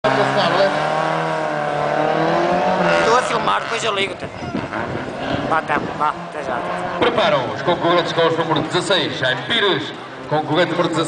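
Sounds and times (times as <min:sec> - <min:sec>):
racing car engine at high revs: 0:00.0 - 0:11.0.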